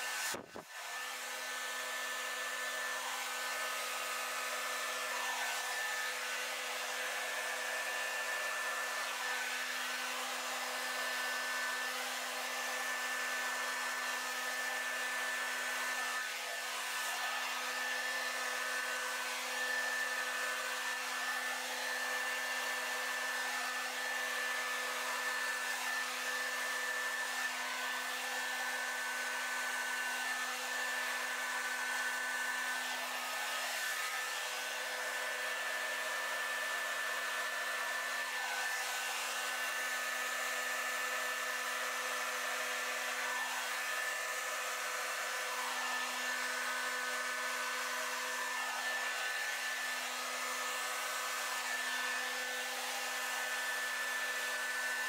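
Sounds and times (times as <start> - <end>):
hair dryer running: 0.0 - 55.0.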